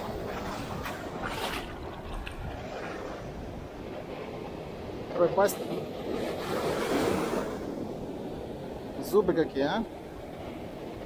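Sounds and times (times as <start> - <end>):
sea surf breaking: 0.0 - 11.0.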